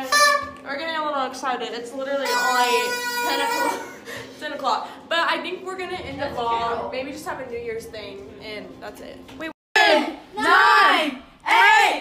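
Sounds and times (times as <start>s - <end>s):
party horn blast: 0.0s - 0.6s, 2.2s - 4.0s.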